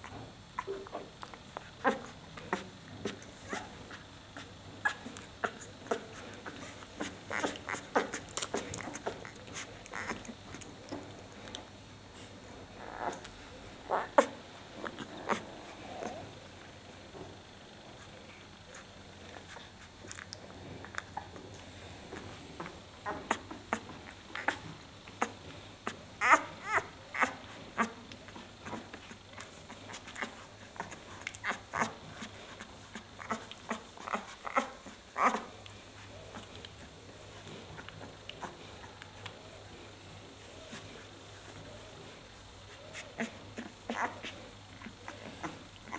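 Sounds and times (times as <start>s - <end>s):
puppy squeaks and grunts: 1.8s - 3.7s, 4.4s - 10.4s, 26.2s - 28.0s, 29.4s - 35.5s, 42.7s - 45.9s.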